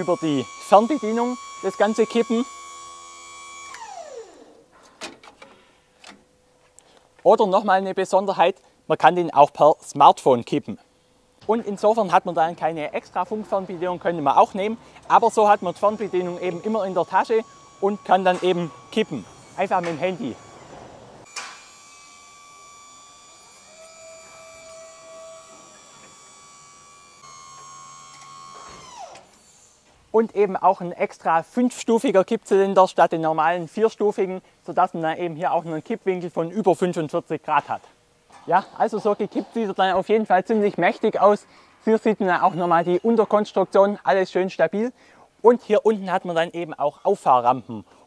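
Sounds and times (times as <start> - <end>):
hydraulic pump motor winding down: 0.0 - 4.7, 13.4 - 29.8.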